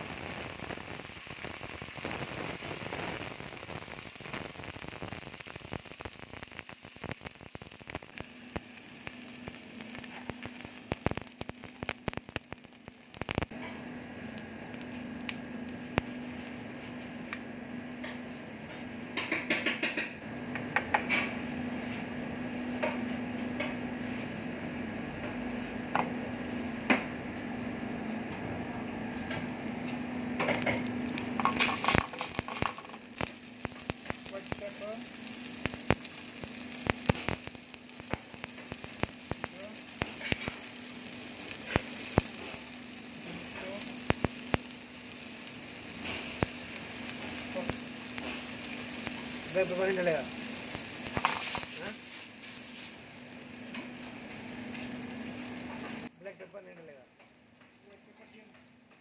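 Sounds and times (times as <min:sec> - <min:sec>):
food sizzling in oil: 0:00.0 - 0:20.1, 0:20.9 - 0:56.1.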